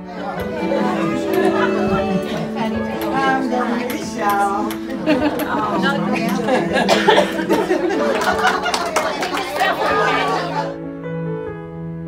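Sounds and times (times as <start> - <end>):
people chatting: 0.0 - 10.8
soft background music: 0.0 - 12.0.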